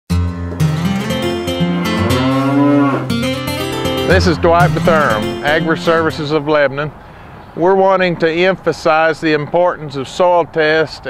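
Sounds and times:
plucked guitar music: 0:00.1 - 0:06.6
cow mooing: 0:01.7 - 0:03.2.

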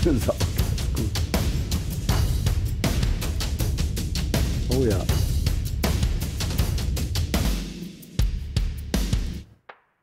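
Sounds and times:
compressed drum loop: 0:00.0 - 0:09.5.

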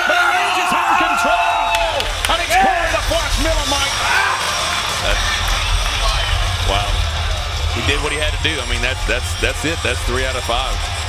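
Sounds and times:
crowd voices: 0:00.0 - 0:11.0
low crowd rumble: 0:00.0 - 0:11.0.

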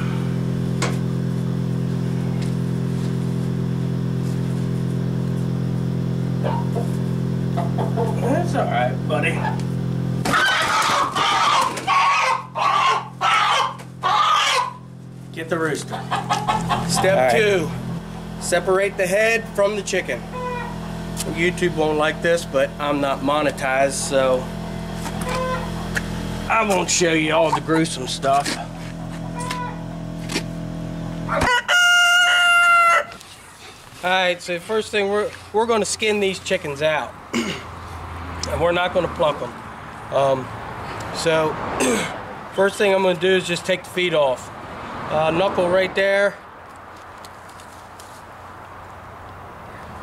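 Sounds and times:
steady low hum: 0:00.0 - 0:31.4
rooster squawking: 0:10.2 - 0:14.9, 0:15.8 - 0:17.4, 0:20.2 - 0:20.9, 0:25.1 - 0:25.9, 0:29.2 - 0:29.9, 0:31.3 - 0:33.8.

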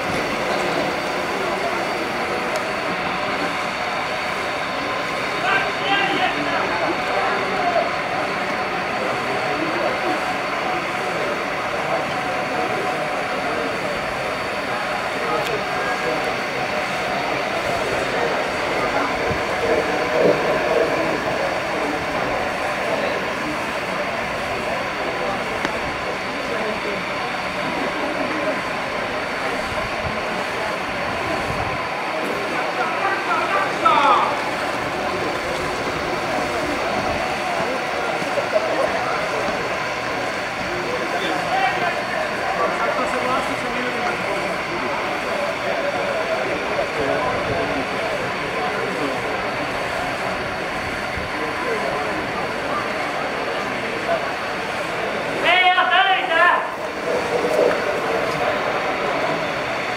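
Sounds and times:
faint indistinct voices: 0:00.0 - 0:59.9.

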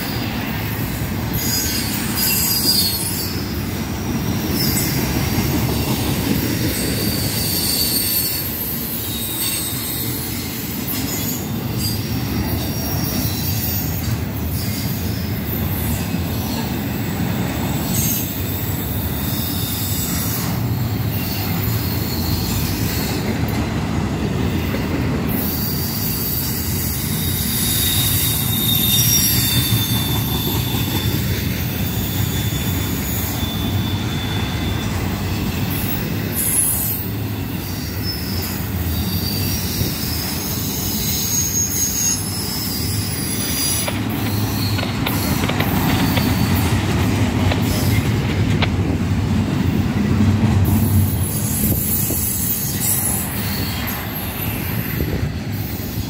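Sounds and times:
train wheels rumbling on rails: 0:00.0 - 0:56.0
high-pitched wheel squeal: 0:01.3 - 0:03.7, 0:06.3 - 0:23.4, 0:25.3 - 0:46.9, 0:50.8 - 0:56.0.

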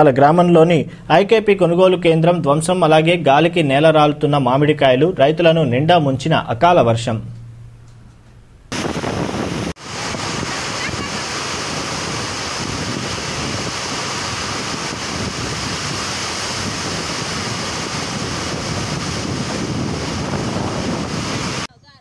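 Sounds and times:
wind buffeting microphone: 0:08.7 - 0:21.7
heavy rain: 0:08.8 - 0:21.7.

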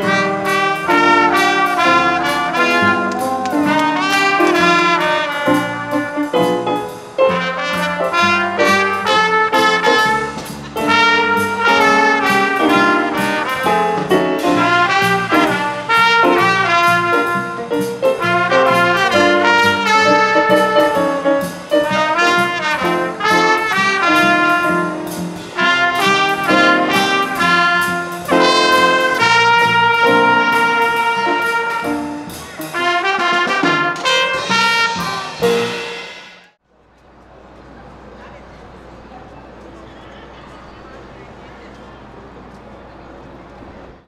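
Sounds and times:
trumpets playing jazzy brass line: 0:00.0 - 0:36.2
drum kit beat: 0:00.0 - 0:36.6.

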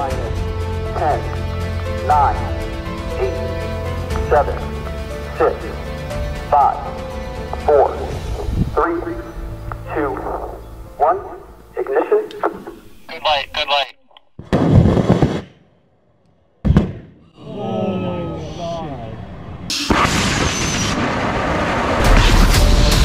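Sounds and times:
background music with bass: 0:00.0 - 0:13.1, 0:22.0 - 0:23.0
loud burst: 0:14.4 - 0:15.6, 0:19.7 - 0:23.0
rocket engine bang: 0:19.7 - 0:23.0.

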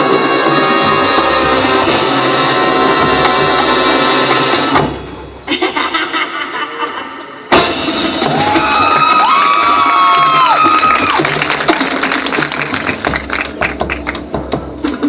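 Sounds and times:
held brass chords: 0:00.0 - 0:05.4
marching band playing: 0:00.0 - 0:05.6, 0:10.0 - 0:15.0
drums and percussion strokes: 0:00.0 - 0:15.0.

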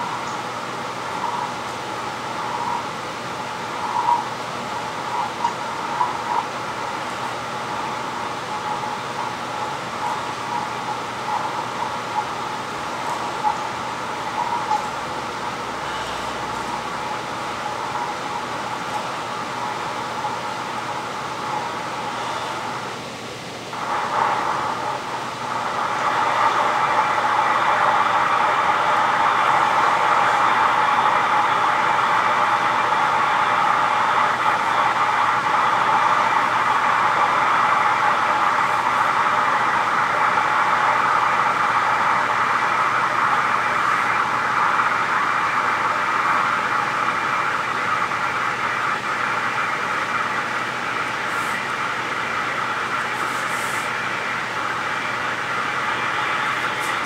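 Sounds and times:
loud steady rushing noise: 0:00.0 - 0:57.0.

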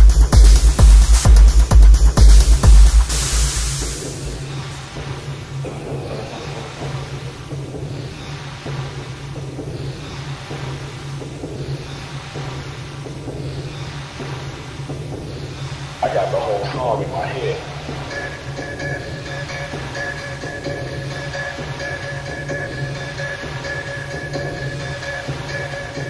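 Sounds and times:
techno kick drum: 0:00.0 - 0:26.0
low bass drone: 0:01.9 - 0:08.2
hissing synth texture: 0:03.1 - 0:26.0.

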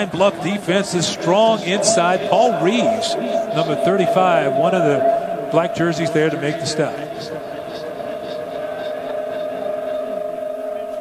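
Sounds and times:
stadium crowd: 0:00.0 - 0:11.0
steady held tones hum: 0:00.0 - 0:11.0.

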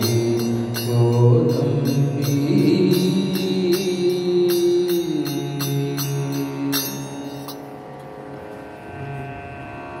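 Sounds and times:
sustained musical drone: 0:00.0 - 0:10.0.

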